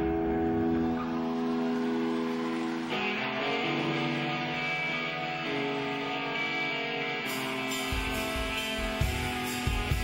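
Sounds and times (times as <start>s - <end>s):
electric guitar ringing chord: 0.0s - 10.0s
live rock band: 0.0s - 10.0s.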